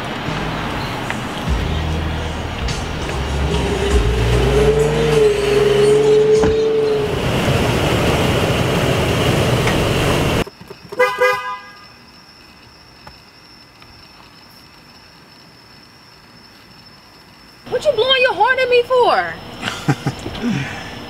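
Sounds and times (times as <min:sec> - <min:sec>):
car horn honks: 0:11.0 - 0:11.8.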